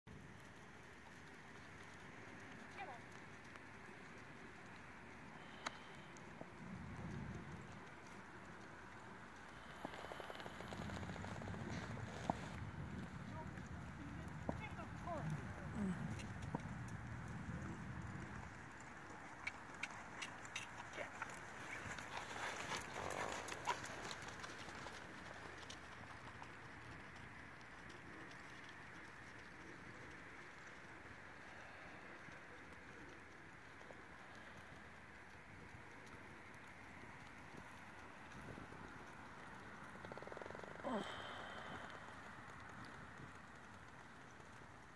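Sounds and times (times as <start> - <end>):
soft hoofbeats on sand: 0.1 - 44.9.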